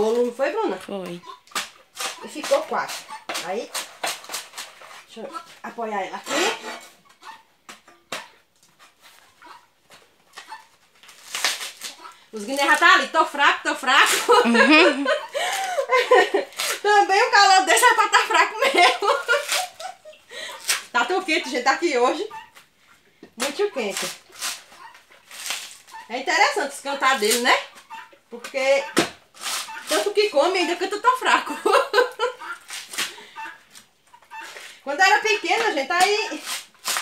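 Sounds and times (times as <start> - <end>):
tearing dry husk fibre: 10.4 - 13.0, 19.1 - 20.0, 23.4 - 26.2, 29.3 - 30.4, 32.6 - 34.8, 35.6 - 37.0.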